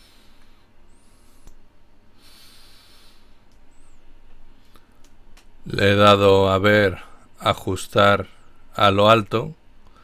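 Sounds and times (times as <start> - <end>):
faint background hiss: 0.0 - 10.0
person breathing out: 2.2 - 3.4.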